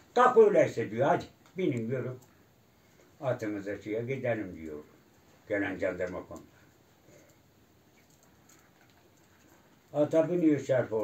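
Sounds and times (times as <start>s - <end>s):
man speaking: 0.1s - 2.3s, 3.2s - 6.5s, 9.9s - 11.0s.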